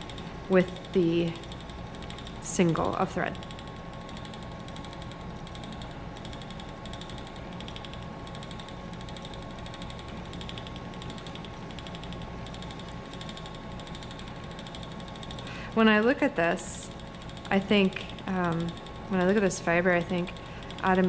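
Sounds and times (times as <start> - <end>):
spinning wheel whirring: 0.0 - 21.0.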